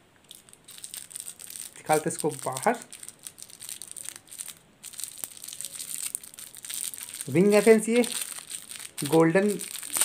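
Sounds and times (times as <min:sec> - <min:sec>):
plastic wrapper crinkling: 0:00.2 - 0:10.0.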